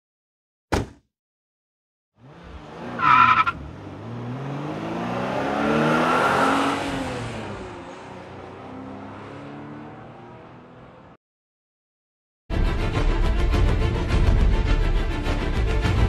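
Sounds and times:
car engine revving: 2.2s - 11.2s
tyre screech: 3.0s - 3.6s.

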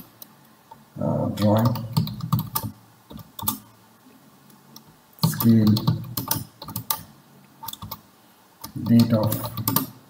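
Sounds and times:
computer keyboard typing: 1.4s - 3.6s, 5.2s - 7.1s, 7.7s - 8.0s, 8.6s - 10.0s.

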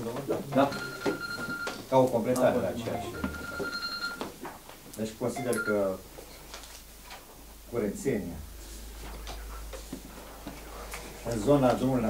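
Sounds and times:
high-pitched electronic tone: 2.8s - 4.1s.

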